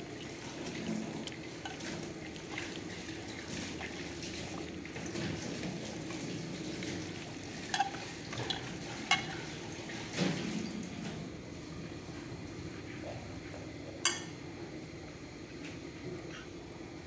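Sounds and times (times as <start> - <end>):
clinks against metal bowl: 14.0 - 14.3.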